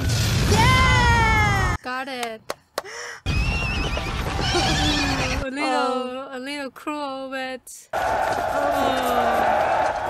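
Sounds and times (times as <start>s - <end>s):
horses whinnying: 3.8s - 5.4s.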